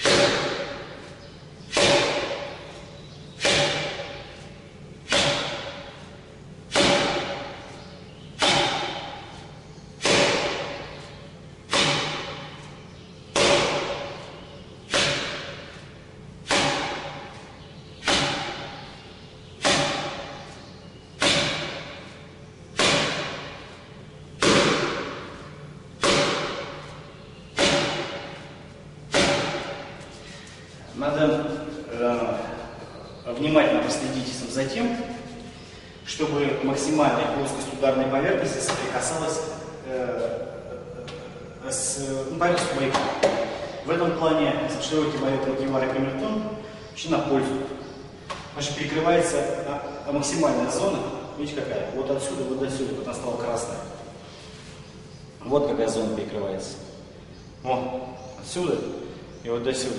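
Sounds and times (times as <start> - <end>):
forearm striking a post: 0.0 - 0.9, 1.7 - 2.6, 3.4 - 4.3, 5.1 - 6.0, 6.7 - 7.6, 8.4 - 9.3, 10.0 - 11.0, 11.7 - 12.6, 13.3 - 14.2, 14.9 - 15.7, 16.4 - 17.4, 18.0 - 18.8, 19.6 - 20.4, 21.2 - 22.1, 22.8 - 23.7, 24.4 - 25.4, 26.0 - 26.9, 27.5 - 28.5, 29.1 - 30.0.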